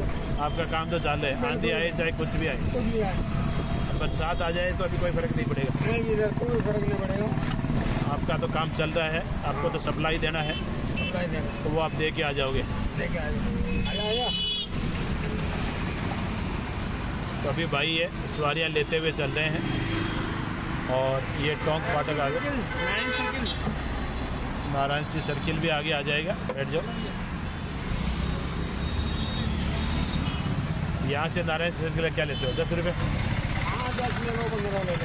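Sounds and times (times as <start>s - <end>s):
traffic and road rumble: 0.0s - 35.0s
small engine rumbling: 1.4s - 9.5s.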